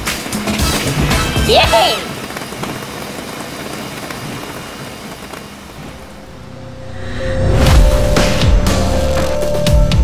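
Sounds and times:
rushing noise with low rumble: 0.0s - 10.0s.

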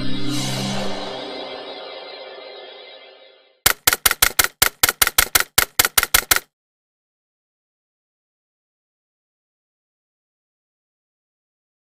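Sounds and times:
rapid sharp clicks: 3.7s - 6.5s.

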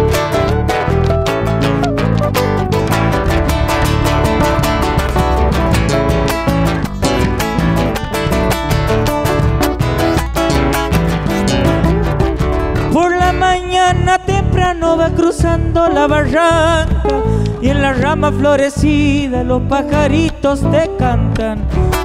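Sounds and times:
electric guitar and bass: 0.0s - 22.0s
strummed acoustic guitar: 0.0s - 22.0s
bass drum beaten with sticks: 2.1s - 14.8s
man singing: 12.9s - 22.0s.

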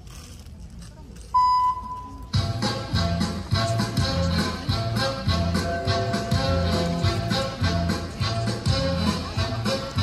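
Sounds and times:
electronic beep: 1.4s - 2.3s
gymnastics routine music: 2.1s - 10.0s.

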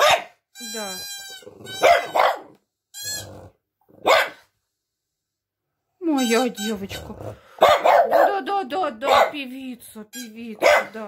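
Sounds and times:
dog barking: 0.0s - 0.4s, 1.7s - 2.6s, 4.0s - 4.5s, 7.5s - 9.5s, 10.6s - 11.0s
toy pipe reedy tone: 0.6s - 2.1s, 2.9s - 3.4s, 6.0s - 7.0s.

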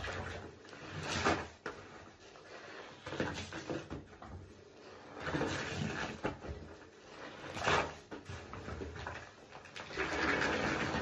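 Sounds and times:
soapy sponges squelching in water: 4.6s - 11.0s.

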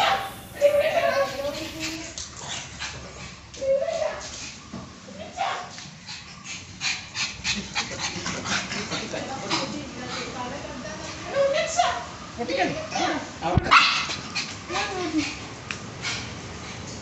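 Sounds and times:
dog whimpering and yipping: 0.0s - 2.0s.

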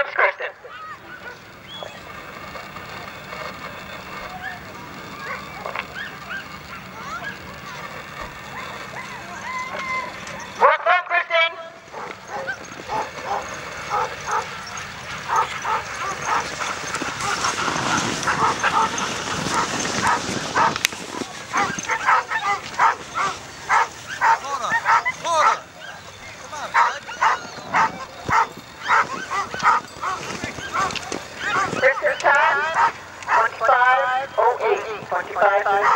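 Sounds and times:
dogs barking and yipping: 0.0s - 35.9s.

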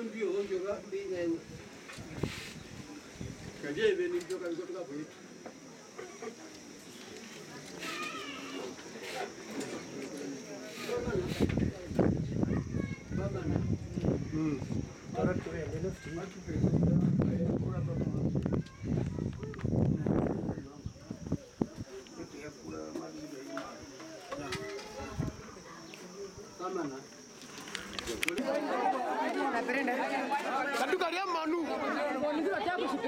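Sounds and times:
people chattering: 0.0s - 33.0s
quiet overlapping conversation: 0.0s - 33.0s.

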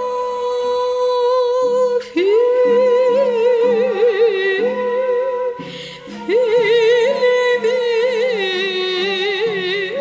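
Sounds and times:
woman singing with vibrato: 0.0s - 10.0s.

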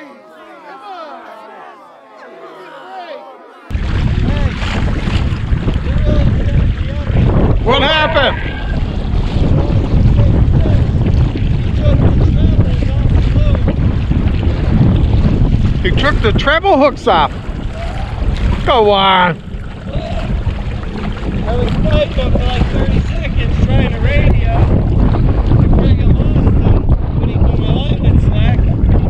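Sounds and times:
wind buffeting microphone: 3.7s - 29.0s.

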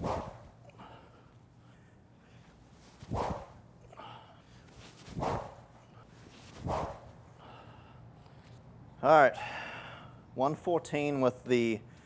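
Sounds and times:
training stick swing whoosh: 0.0s - 0.6s, 2.9s - 3.7s, 4.9s - 5.7s, 6.4s - 7.2s.

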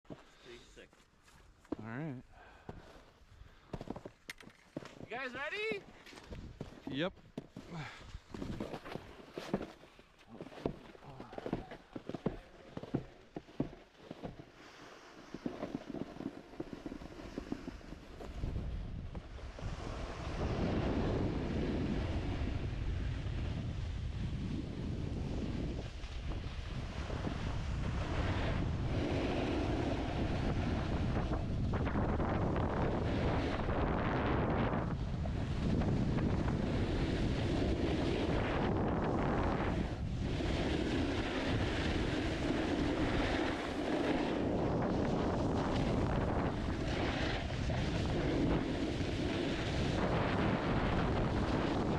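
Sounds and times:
snowboard scraping across snow: 4.7s - 51.9s
wind rushing over microphone: 15.3s - 51.9s.

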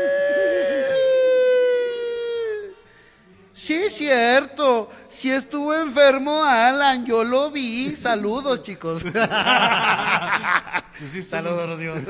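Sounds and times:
person wailing long note: 0.0s - 2.8s.

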